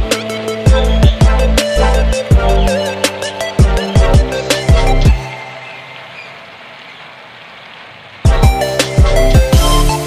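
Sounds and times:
music with heavy beat: 0.0s - 5.3s, 8.3s - 10.0s.

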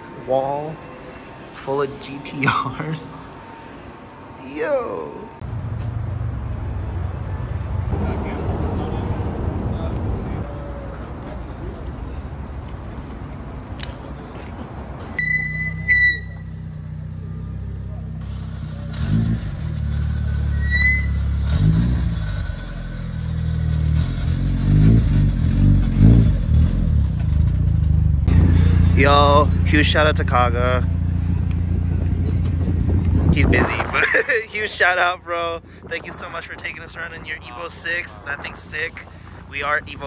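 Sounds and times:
car engine revving: 16.6s - 33.6s.

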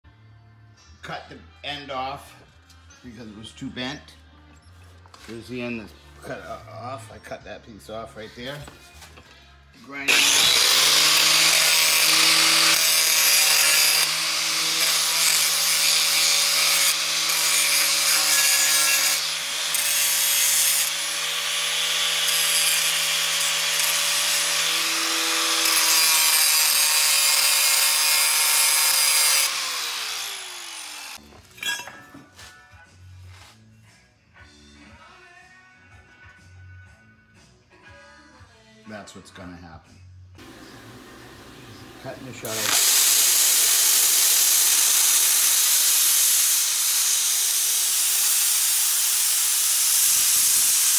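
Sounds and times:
angle grinder grinding steel: 10.1s - 31.9s, 40.4s - 50.9s.

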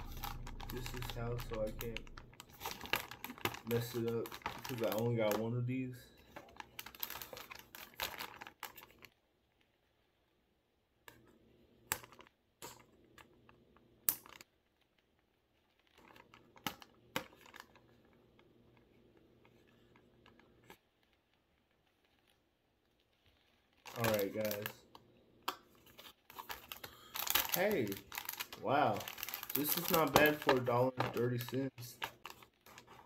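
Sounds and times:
cardboard rustling: 0.0s - 5.5s, 25.8s - 33.0s.

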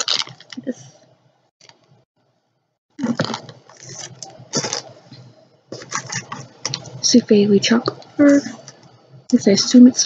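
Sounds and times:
candy wrappers crinkling: 0.0s - 0.7s, 3.0s - 4.9s.

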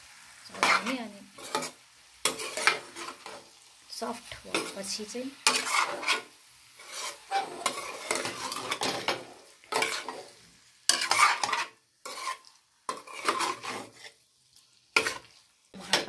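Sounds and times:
steel ladle scraping a pan: 0.5s - 3.6s, 4.5s - 14.2s, 14.9s - 16.0s.

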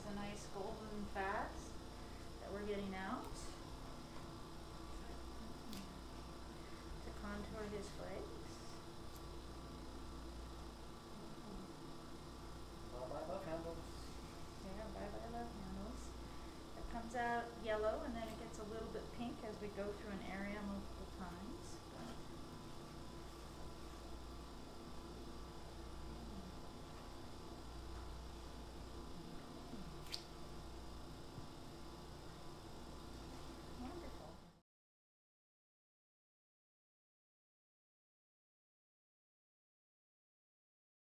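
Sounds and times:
suction equipment humming: 0.0s - 34.6s
wet cannula working sounds: 0.2s - 34.4s.

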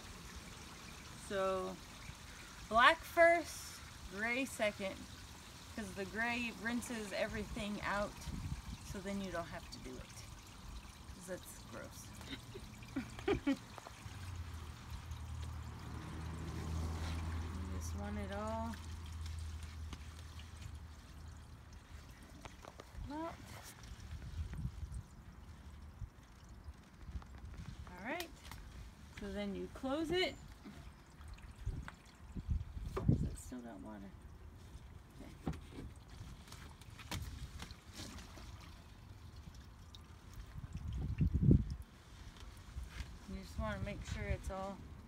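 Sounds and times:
water draining through hose: 0.0s - 45.0s.

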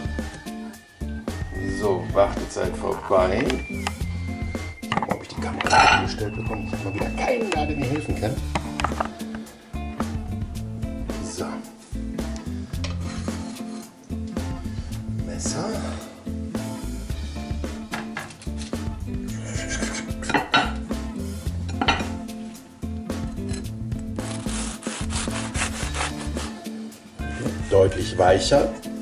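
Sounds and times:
background music: 0.0s - 29.0s
hands rubbing crusty bread: 24.2s - 26.7s.

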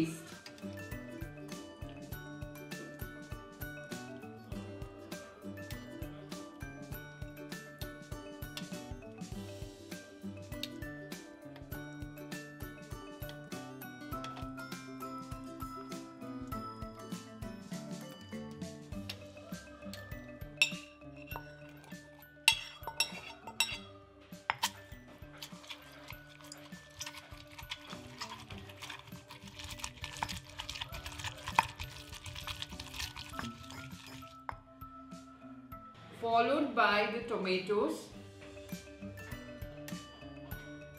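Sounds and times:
background music: 0.0s - 40.9s
utensils clinking on ceramic plate: 20.6s - 23.9s, 24.5s - 34.6s.

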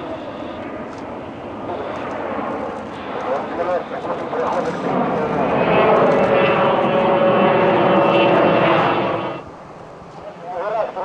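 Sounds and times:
jet airliner climbing overhead: 0.0s - 11.0s.

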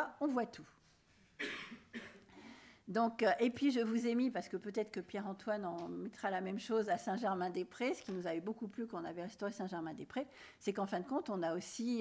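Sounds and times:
person coughing: 1.4s - 2.4s.

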